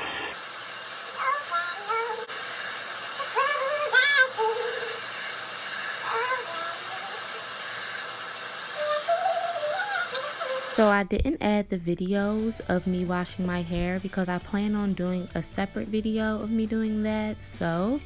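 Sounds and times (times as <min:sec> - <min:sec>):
shower running: 0:00.0 - 0:10.9
woman singing: 0:03.2 - 0:05.0, 0:06.0 - 0:07.4, 0:08.8 - 0:18.0.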